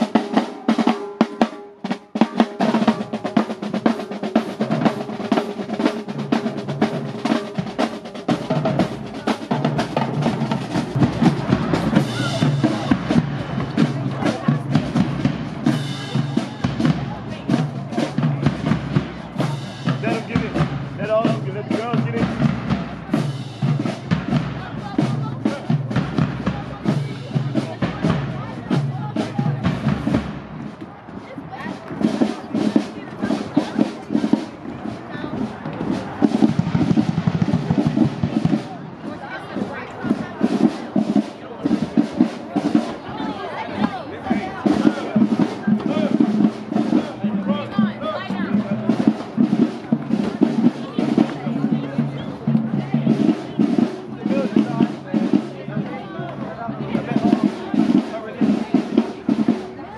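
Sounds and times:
marching drumline playing: 0:00.0 - 0:59.9.

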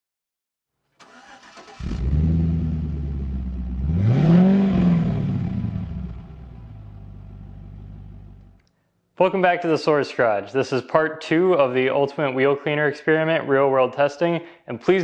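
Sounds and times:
car engine starting and idling: 0:01.0 - 0:08.6
engine revving: 0:01.0 - 0:08.6.

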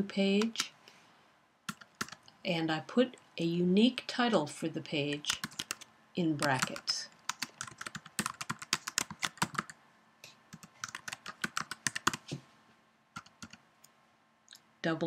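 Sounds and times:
typing on computer keyboard: 0:01.7 - 0:02.2, 0:05.1 - 0:09.8, 0:10.5 - 0:12.3, 0:13.2 - 0:13.6.

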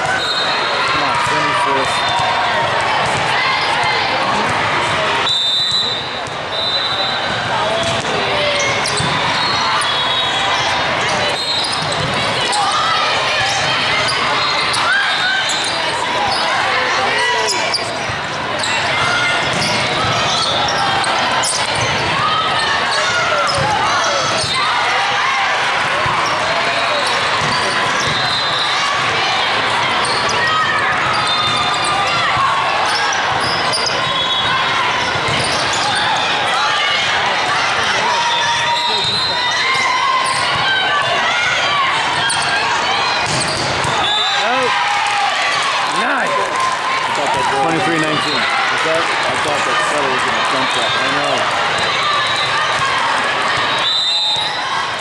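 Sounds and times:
people calling and shouting: 0:00.0 - 0:55.0.

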